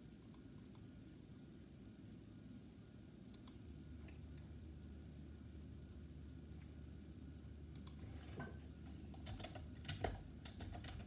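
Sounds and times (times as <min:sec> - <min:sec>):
typing on keyboard: 0:09.1 - 0:11.0.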